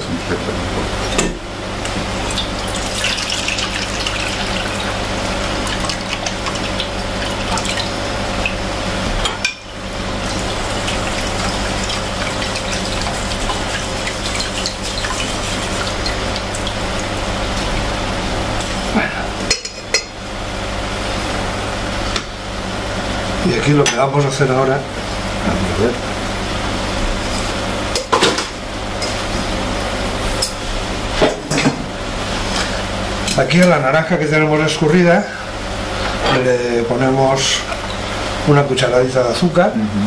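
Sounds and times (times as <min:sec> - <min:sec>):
steady background hum: 0:00.0 - 0:40.0.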